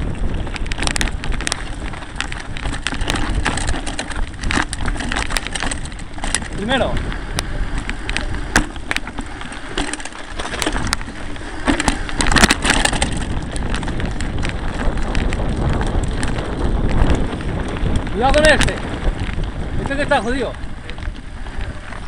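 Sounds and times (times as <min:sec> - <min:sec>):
bike rattling and knocking: 0:00.0 - 0:22.0
bike tyre rumble: 0:00.0 - 0:22.0.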